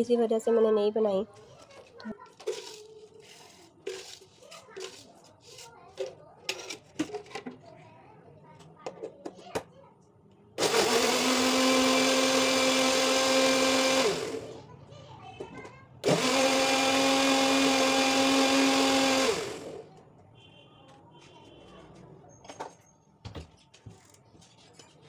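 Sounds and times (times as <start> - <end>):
blender motor humming: 10.6 - 14.6, 16.0 - 19.8.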